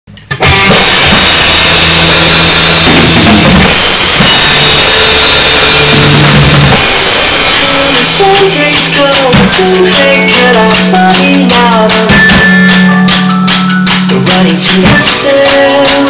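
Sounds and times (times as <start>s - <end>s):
drum kit playing loudly: 0.2s - 16.0s.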